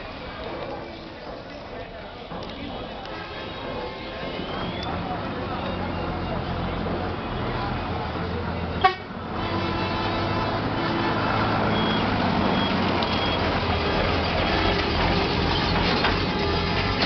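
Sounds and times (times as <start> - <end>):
traffic engines running: 0.0 - 17.0
voices: 0.0 - 17.0
car horns tooting: 8.6 - 14.8
short high beeps: 11.7 - 13.4.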